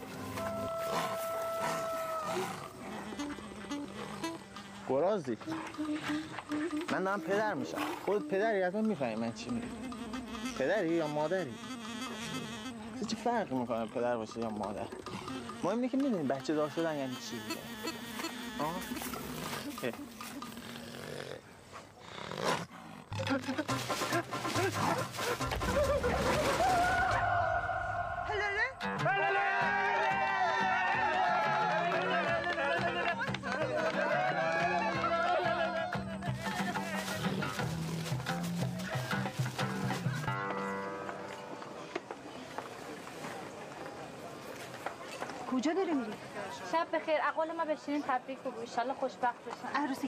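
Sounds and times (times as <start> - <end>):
wild boar grunting: 0.8 - 6.7
background music: 23.1 - 41.8.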